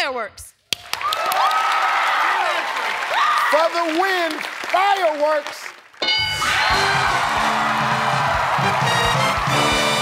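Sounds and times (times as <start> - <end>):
audience cheering and whooping: 0.8 - 3.8, 6.2 - 10.0
bright chime: 6.0 - 6.6
upbeat show music: 6.0 - 10.0.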